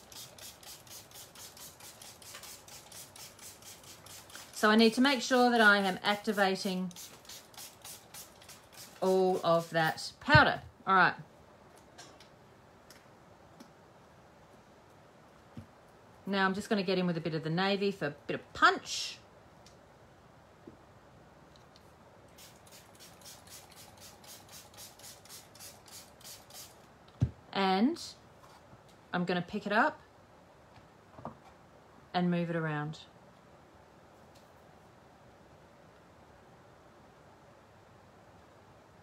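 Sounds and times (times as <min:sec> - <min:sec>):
powder shaker swishing: 0:00.0 - 0:10.1, 0:22.4 - 0:26.8.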